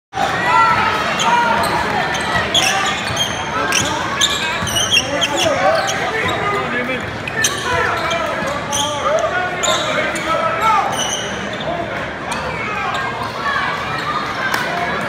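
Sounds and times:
crowd voices and shouts: 0:00.1 - 0:15.0
sneakers squeaking: 0:00.7 - 0:14.4.

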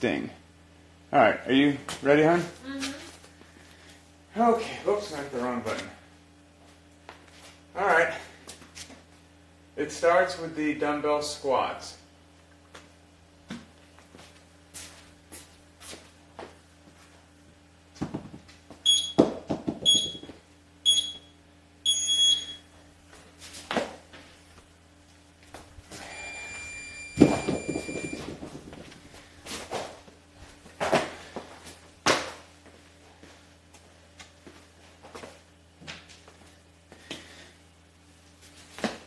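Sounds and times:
timer beeping: 0:18.9 - 0:19.2, 0:19.9 - 0:20.2, 0:20.9 - 0:21.3, 0:21.9 - 0:22.6.

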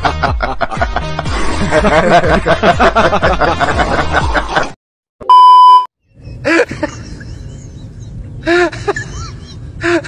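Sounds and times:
laughter: 0:00.0 - 0:04.8, 0:06.3 - 0:10.0
loud electronic bleep: 0:05.3 - 0:05.9.

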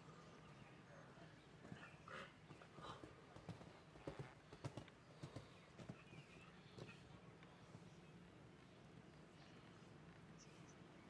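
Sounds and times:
horse hoofbeats on sand: 0:03.4 - 0:07.0.

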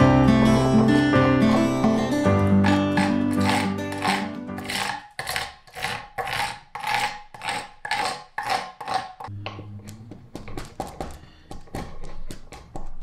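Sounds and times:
acoustic guitar music: 0:00.0 - 0:04.6
hand scraper scraping wood: 0:02.6 - 0:09.3.

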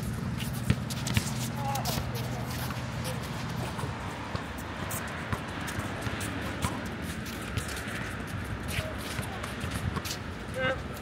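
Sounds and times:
sneakers scuffing and squeaking: 0:00.0 - 0:10.7.

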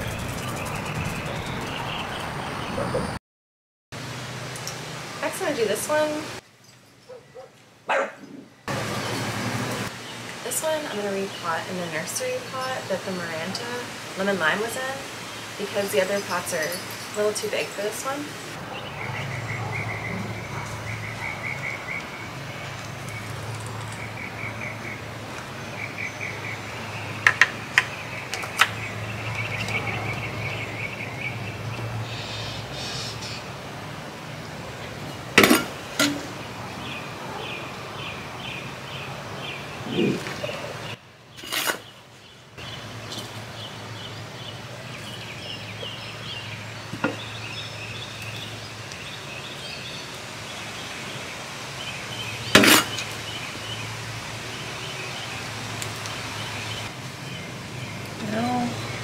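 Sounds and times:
chorus of chirping animals: 0:00.0 - 0:03.2, 0:07.0 - 0:10.2, 0:15.3 - 0:27.2, 0:27.8 - 0:33.6, 0:36.4 - 0:59.0.

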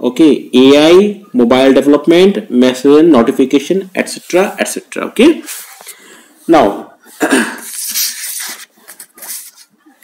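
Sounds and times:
man speaking: 0:00.0 - 0:05.6, 0:06.4 - 0:07.0
paper rustling: 0:07.6 - 0:09.8.

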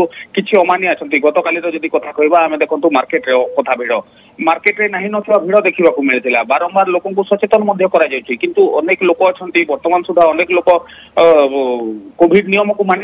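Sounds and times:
person speaking over telephone: 0:00.0 - 0:11.1.

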